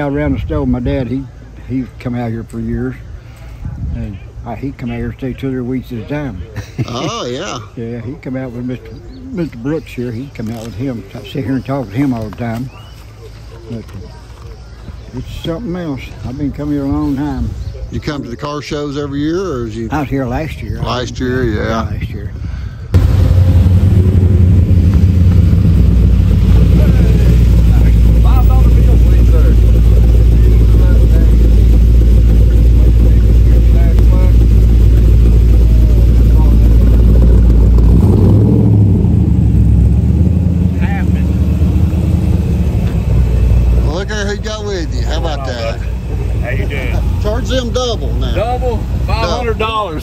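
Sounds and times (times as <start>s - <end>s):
car engines deep exhaust rumble: 0.0s - 50.0s.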